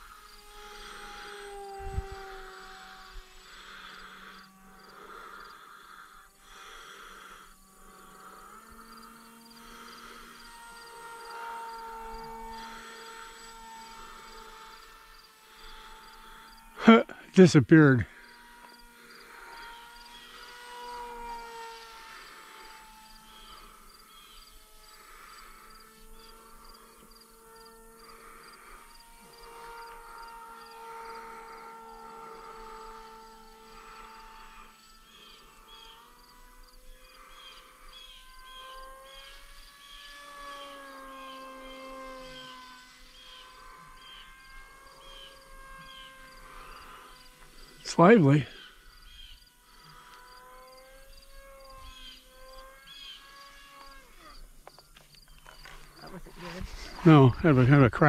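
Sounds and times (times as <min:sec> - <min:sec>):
distant drone motor whine: 0:00.0 - 0:58.0.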